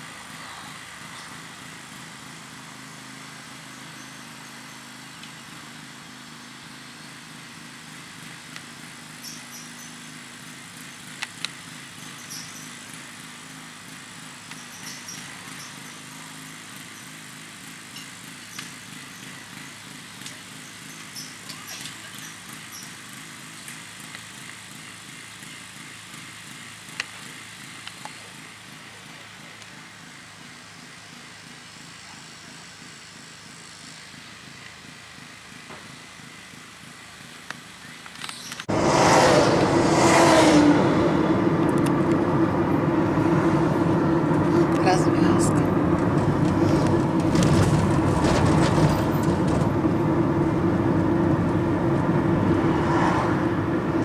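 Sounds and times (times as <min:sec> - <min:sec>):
distant engine drone: 0:00.0 - 0:54.0.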